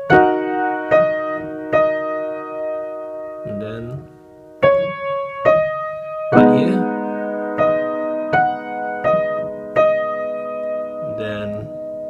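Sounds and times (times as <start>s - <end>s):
upright piano slow melody: 0.0s - 12.0s.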